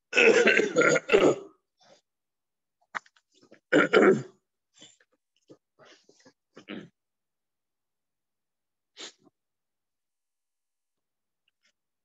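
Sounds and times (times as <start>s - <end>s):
person coughing: 0.1s - 1.5s, 3.8s - 4.4s.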